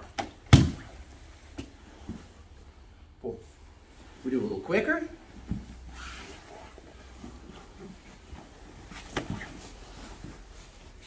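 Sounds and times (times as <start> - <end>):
body thudding on mat: 0.4 - 1.0.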